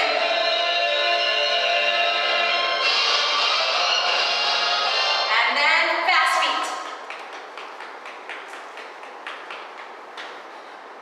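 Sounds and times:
sneaker footfalls on rubber floor: 6.8 - 10.6.

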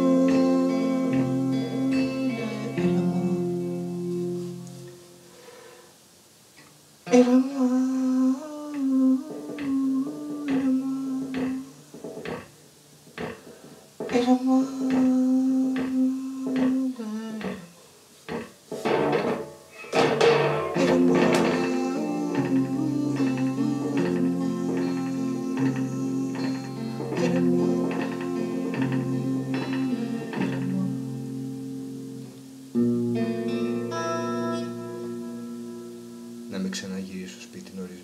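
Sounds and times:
electric guitar strums: 0.0 - 5.3, 9.2 - 38.0
electric guitar long held notes: 0.0 - 5.8, 7.1 - 12.5, 14.0 - 17.8, 19.9 - 37.7.

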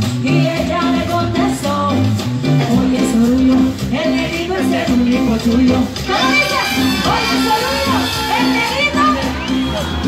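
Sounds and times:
bass line: 0.0 - 10.0
guitar: 0.0 - 10.0
live band playing loudly: 0.0 - 10.0.

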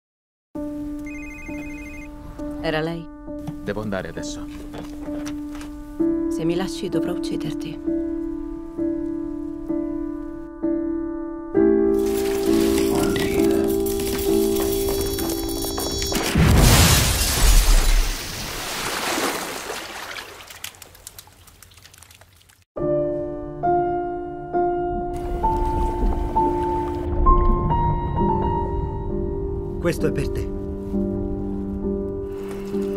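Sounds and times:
slow piano music: 0.6 - 15.8, 22.8 - 32.9
electronic telephone ringtone: 1.1 - 2.1.

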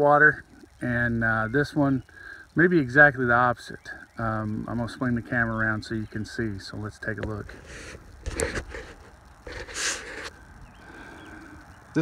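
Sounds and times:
breath close to microphone: 2.1 - 2.6, 7.5 - 11.8.

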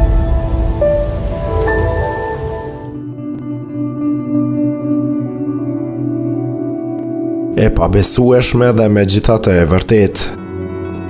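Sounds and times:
deep rumbling noise: 0.0 - 3.0.

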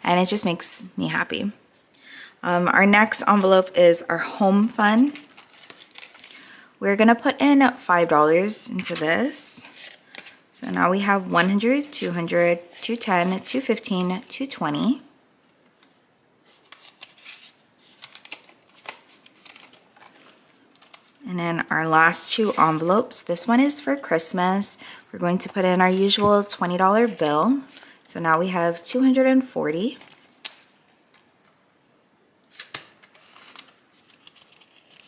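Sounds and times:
paper envelopes rustling: 3.0 - 6.6, 8.4 - 14.4, 16.4 - 21.2, 22.0 - 24.0, 29.8 - 31.6, 32.5 - 35.0
plastic pages being handled: 4.6 - 6.6, 8.6 - 14.4, 15.8 - 21.2, 29.8 - 31.6, 32.4 - 35.0.

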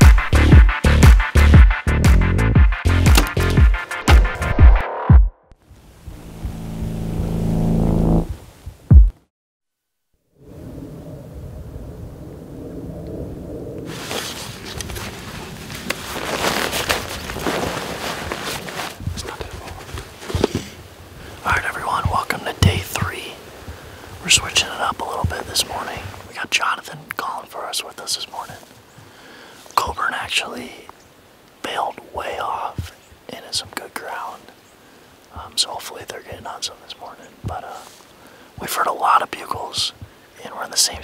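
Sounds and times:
intro music: 0.0 - 5.3, 6.0 - 9.1
footsteps through dry brush: 13.9 - 20.8
low whispered speech: 19.1 - 20.0, 21.4 - 23.4, 31.6 - 34.4, 38.6 - 41.0.

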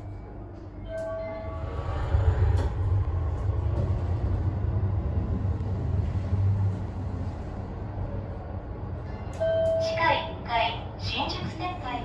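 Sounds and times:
subway train rumble: 0.0 - 12.0.

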